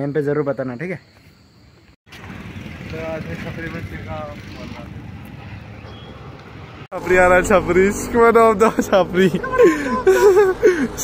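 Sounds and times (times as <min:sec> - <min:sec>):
low outdoor rumble: 0:02.1 - 0:11.0.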